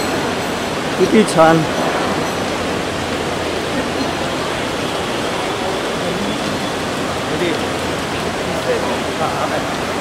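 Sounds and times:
busy airport terminal noise: 0:00.0 - 0:10.0.

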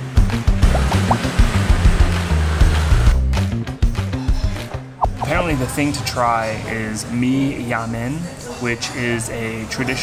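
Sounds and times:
music with bass line and beat: 0:00.3 - 0:02.1, 0:05.0 - 0:05.4.

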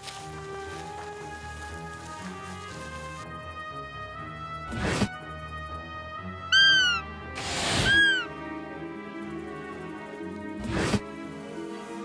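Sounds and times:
background music: 0:00.0 - 0:12.0
squeaky deer call: 0:06.5 - 0:08.4.

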